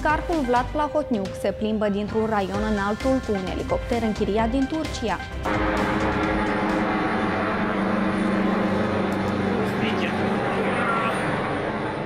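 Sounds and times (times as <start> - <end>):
helicopter flying overhead: 4.8 - 12.0.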